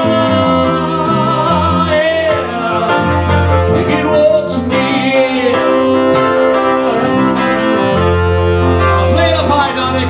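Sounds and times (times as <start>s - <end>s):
keyboard: 0.0s - 10.0s
saxophone long notes: 0.0s - 10.0s.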